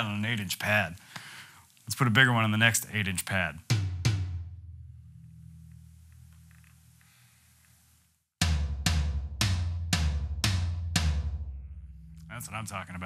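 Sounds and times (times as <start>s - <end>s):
electronic tom strikes ringing: 3.8s - 6.3s, 8.4s - 13.0s.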